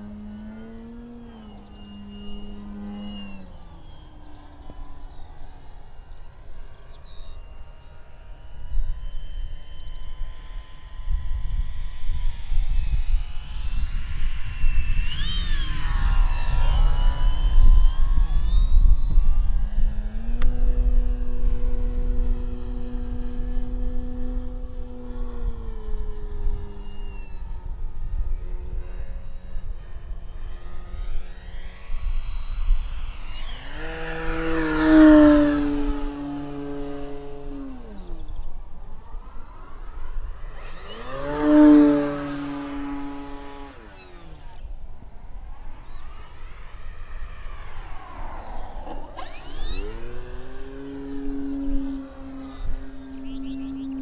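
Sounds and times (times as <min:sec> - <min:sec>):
electric rc plane propeller whine: 0:00.0 - 0:54.0.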